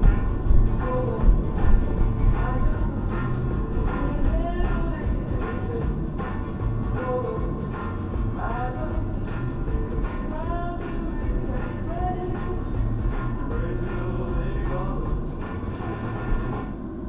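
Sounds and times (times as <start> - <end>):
car low rumble: 0.0 - 17.0
song playing on car radio: 0.0 - 17.0.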